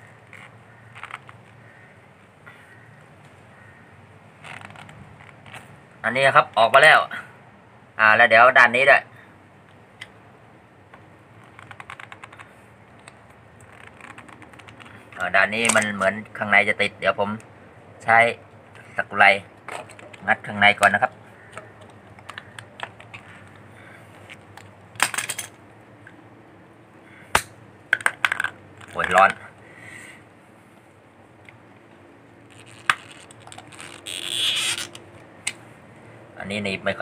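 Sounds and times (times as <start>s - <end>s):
pliers clicking and scraping: 11.4s - 16.0s, 32.5s - 35.6s
metal tool clicking and scraping: 15.6s - 16.0s.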